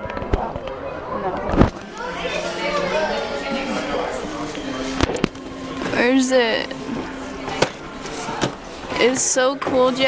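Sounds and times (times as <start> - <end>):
faint voices: 0.0 - 10.0
steady hum: 1.0 - 10.0.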